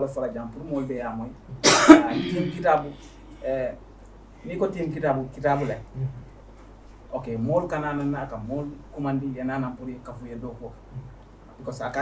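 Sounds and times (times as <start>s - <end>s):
man talking: 0.0s - 1.4s, 2.0s - 3.8s
loud cough: 1.6s - 2.6s.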